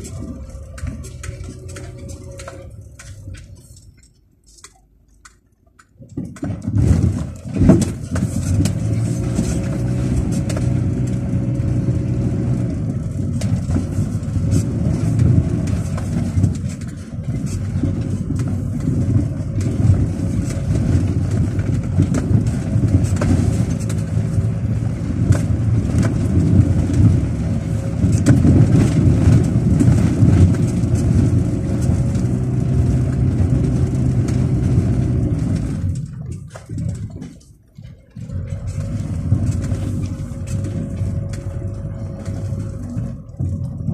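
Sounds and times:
car engine running: 0.0 - 4.8, 6.2 - 43.9
knocks and rattles from bumps: 0.0 - 43.9.

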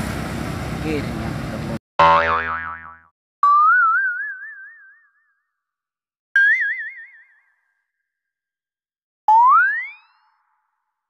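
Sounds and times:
roadside traffic: 0.0 - 2.6
cartoon boing effects: 2.0 - 5.4, 9.3 - 10.6.

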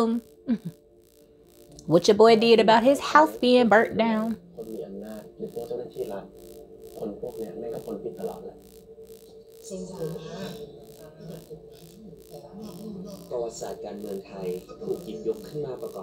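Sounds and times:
pulsing background music: 0.0 - 16.0
person speaking: 1.8 - 6.3, 7.0 - 8.6, 9.6 - 16.0.

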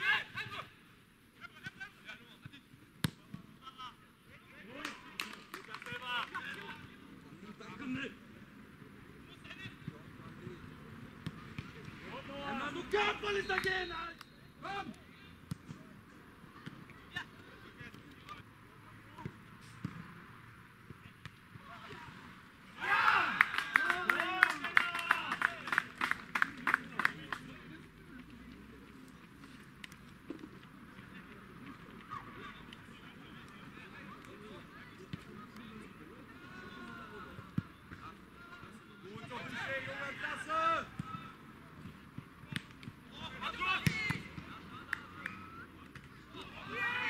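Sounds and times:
players shouting and calling: 0.0 - 47.0
players shouting: 12.1 - 15.0, 21.6 - 27.2, 32.0 - 41.4, 43.0 - 47.0.

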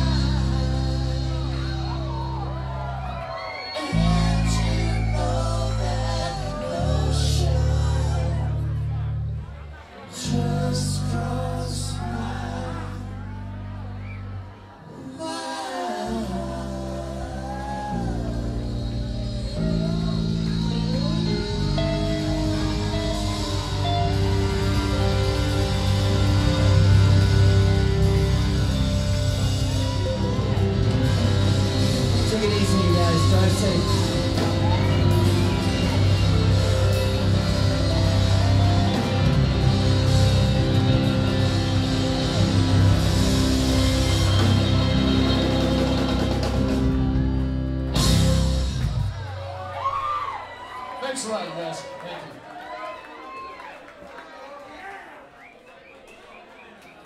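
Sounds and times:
man singing: 0.0 - 2.5, 3.8 - 9.1, 9.9 - 13.6, 14.9 - 26.6, 31.2 - 42.2
rock band playing: 0.0 - 9.1, 17.8 - 50.1
bass guitar: 0.0 - 14.8, 16.0 - 50.3
electric guitar chords: 17.4 - 49.5
drum kit with cymbal wash: 18.0 - 49.4.

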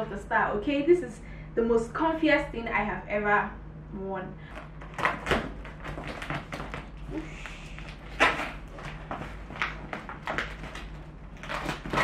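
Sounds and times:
blade cutting packing tape: 9.6 - 12.0.

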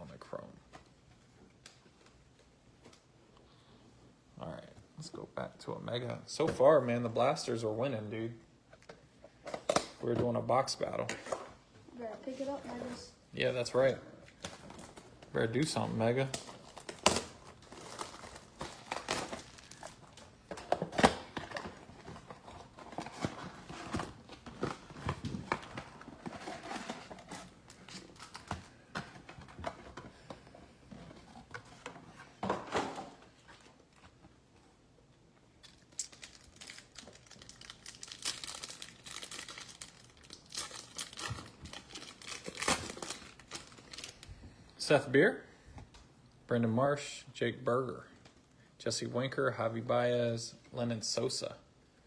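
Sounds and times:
wrappers crinkling: 15.6 - 20.4, 35.6 - 44.3
packs tearing open: 16.2 - 21.7, 35.6 - 44.2.

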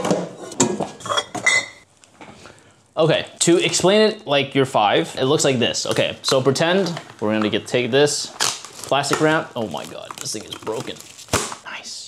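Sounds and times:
small hard objects clinking: 8.6 - 11.4.

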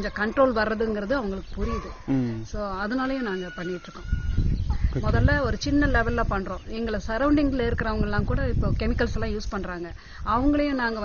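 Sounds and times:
woman speaking: 0.0 - 4.1.

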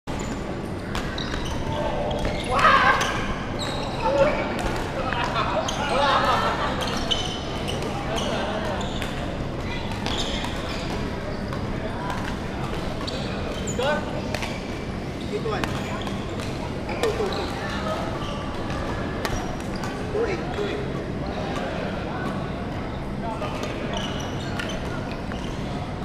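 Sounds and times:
people talking: 3.9 - 14.5, 15.2 - 26.0.

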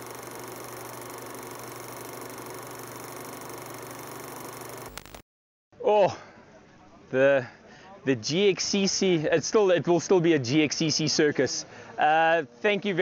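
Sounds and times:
film projector hiss and hum: 0.0 - 5.2
projector clicks: 1.8 - 5.2.

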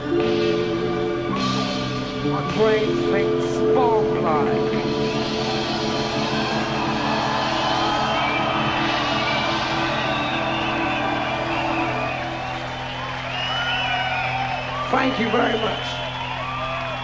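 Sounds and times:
live concert music: 0.0 - 17.0
audience whooping and whistling: 4.9 - 17.0.

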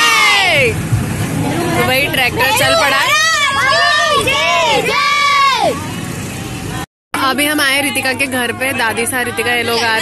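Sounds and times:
tractor engine running: 0.0 - 10.0.

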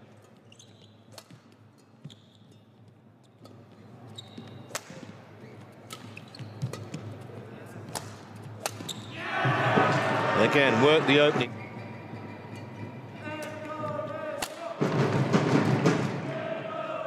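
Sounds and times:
rackets hitting shuttlecock: 1.1 - 2.2, 4.4 - 5.2, 5.8 - 9.2, 13.4 - 14.7.

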